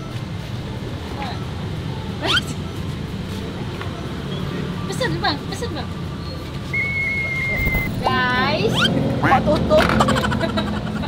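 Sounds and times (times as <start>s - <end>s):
high whistle-like tone: 6.2s - 8.9s.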